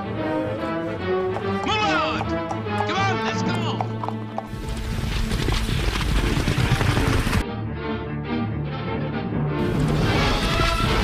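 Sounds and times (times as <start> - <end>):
background music: 0.0 - 11.0
horses galloping hoofbeats: 1.3 - 7.4.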